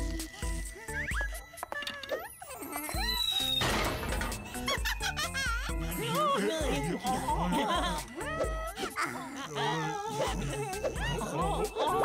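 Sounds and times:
cartoon background music: 0:00.0 - 0:12.0
short squeaky sound effects: 0:03.0 - 0:04.5.

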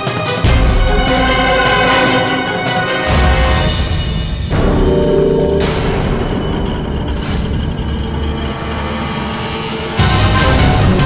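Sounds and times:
ominous dramatic music: 0:00.0 - 0:11.0
heavy low rumble: 0:03.6 - 0:11.0.

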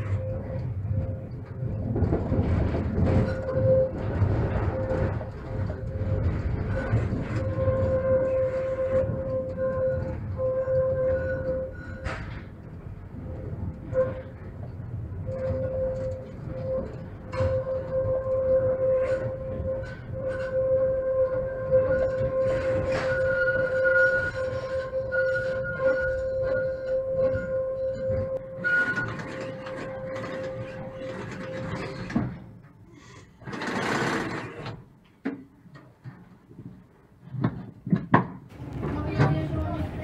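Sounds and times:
tram running with steady whine: 0:00.0 - 0:40.0.

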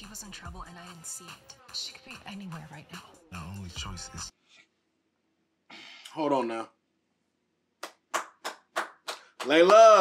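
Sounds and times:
person clapping hands: 0:07.8 - 0:10.0.

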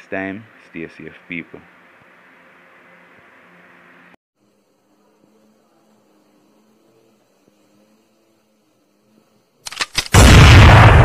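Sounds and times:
sharp crackling static clicks: 0:09.6 - 0:11.0.

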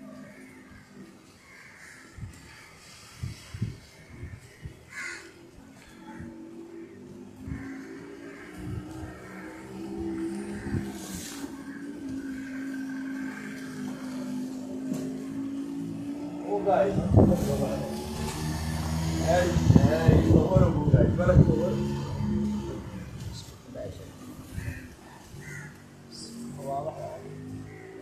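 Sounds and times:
crows cawing: 0:00.0 - 0:28.0
vehicle engine hum: 0:00.0 - 0:28.0.

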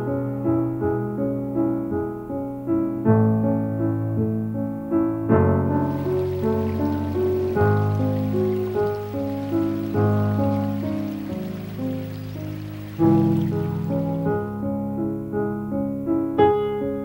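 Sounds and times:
gentle piano music: 0:05.3 - 0:14.6, 0:15.8 - 0:17.0
running water of creek: 0:05.8 - 0:14.5.

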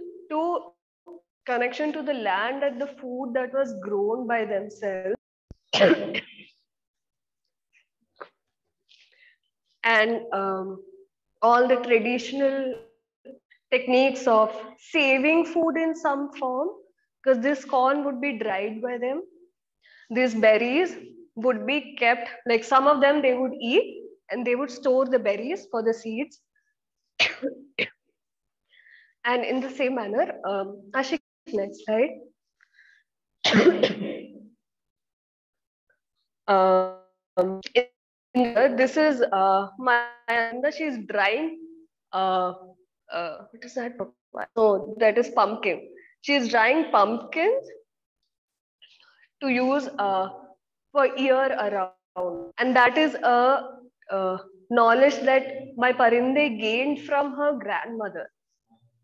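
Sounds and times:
woman speaking: 0:00.0 - 0:05.2, 0:09.8 - 0:10.8, 0:11.4 - 0:12.9, 0:13.7 - 0:19.2, 0:20.1 - 0:26.3, 0:29.3 - 0:32.2, 0:36.5 - 0:41.6, 0:42.2 - 0:47.8, 0:49.4 - 0:58.3
woman coughing: 0:05.7 - 0:06.5, 0:27.2 - 0:28.0, 0:33.4 - 0:34.5.

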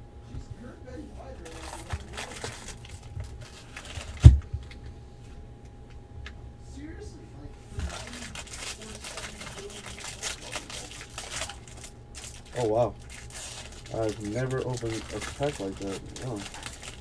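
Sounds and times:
plastic wrapper crinkling: 0:01.4 - 0:04.7, 0:07.8 - 0:17.0.

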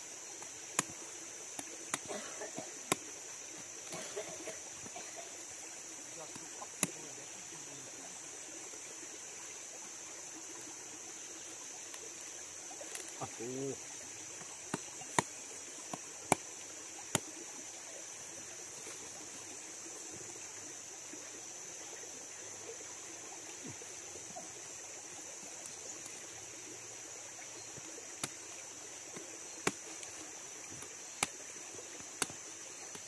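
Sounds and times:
machete striking fruit husk: 0:29.2 - 0:30.2.

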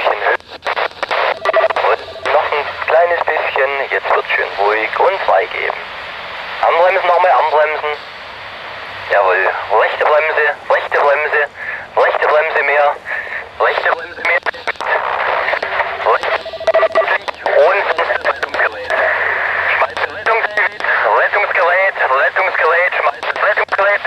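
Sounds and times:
voice over two-way radio: 0:00.0 - 0:05.8, 0:06.5 - 0:08.0, 0:09.1 - 0:24.0
radio hiss: 0:00.0 - 0:24.0.

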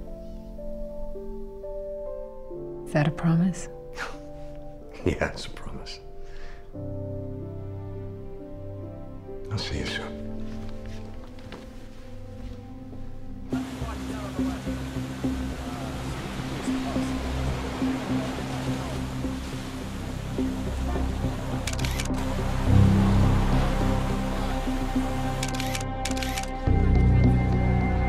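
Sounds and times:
background score music: 0:00.0 - 0:28.0
running water: 0:13.3 - 0:26.6
camera shutter bursts: 0:21.6 - 0:22.2, 0:25.4 - 0:26.6.

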